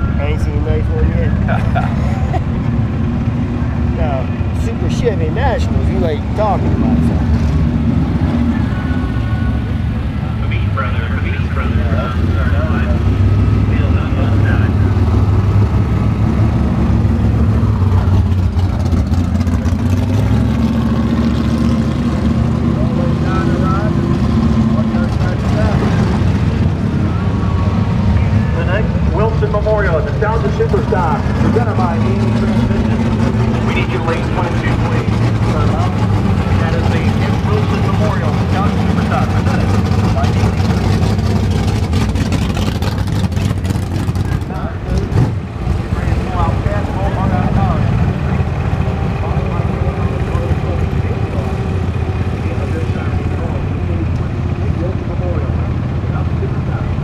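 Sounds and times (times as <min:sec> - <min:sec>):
vehicle engine droning: 0:00.0 - 0:57.0.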